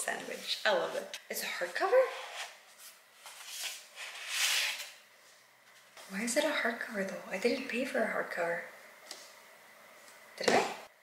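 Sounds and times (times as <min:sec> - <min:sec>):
book scraping out of cardboard box: 0:03.2 - 0:05.0.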